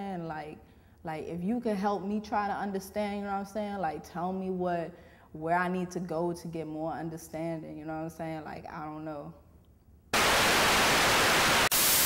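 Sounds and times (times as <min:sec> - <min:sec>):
television static hiss: 0:10.2 - 0:12.0.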